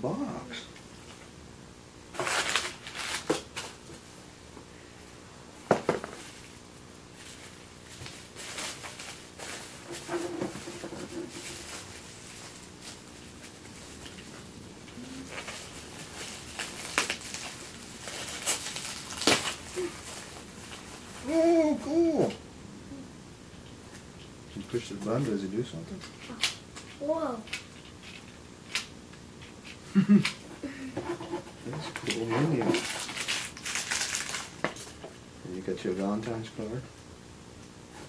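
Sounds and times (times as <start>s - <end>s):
packaging crinkling: 2.1s - 3.8s, 15.2s - 21.0s, 31.9s - 35.0s
plastic and paper rustling: 2.2s - 3.8s, 7.2s - 14.3s, 15.0s - 21.3s, 31.2s - 35.0s.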